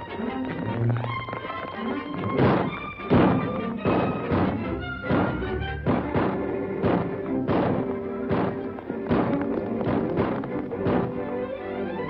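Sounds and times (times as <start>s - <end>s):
orchestral film music: 0.0s - 12.0s
regular heavy thuds: 0.2s - 11.4s.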